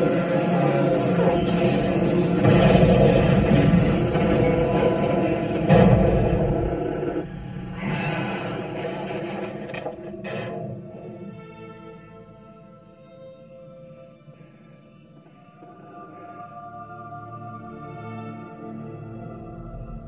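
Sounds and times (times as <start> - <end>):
dramatic film score: 0.0 - 20.0
sharp hit: 0.9 - 11.3.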